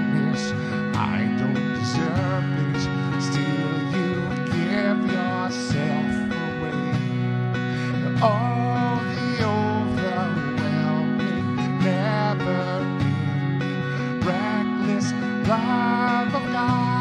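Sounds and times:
acoustic guitar strumming: 0.0 - 17.0
man singing: 0.0 - 17.0.

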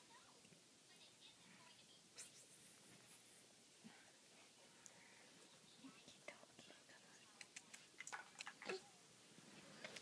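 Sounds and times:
soft whisper: 0.1 - 10.0.

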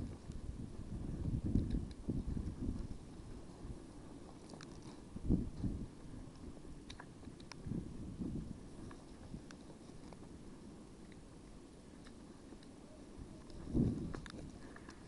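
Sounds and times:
wind buffeting microphone: 0.0 - 11.0, 13.0 - 15.0
faint sharp clicks: 6.3 - 7.6, 13.4 - 15.0.

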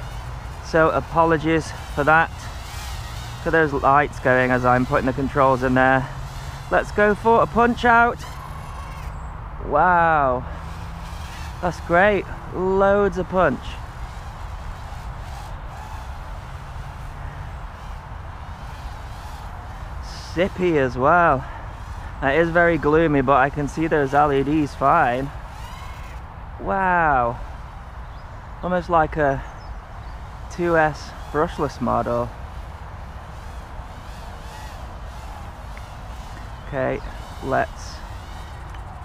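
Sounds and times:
distant drone buzz: 0.0 - 39.0.

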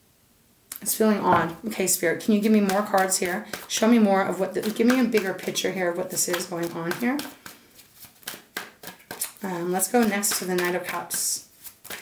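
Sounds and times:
cards being shuffled: 2.4 - 12.0
soft slaps of cards: 6.3 - 9.4, 11.8 - 12.0.

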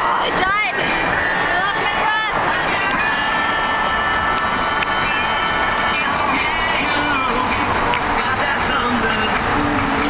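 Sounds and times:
music with long held notes: 0.8 - 10.0.

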